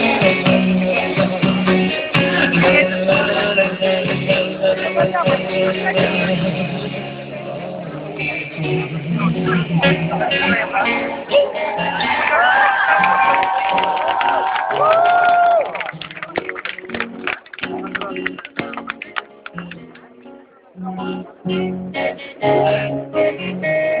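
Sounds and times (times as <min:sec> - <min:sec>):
strummed acoustic guitar: 0:00.0 - 0:12.1
person singing long notes: 0:21.1 - 0:24.0.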